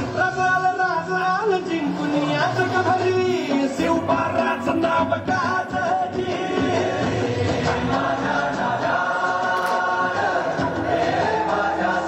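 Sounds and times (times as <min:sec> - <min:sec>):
dance music: 0:00.0 - 0:12.0.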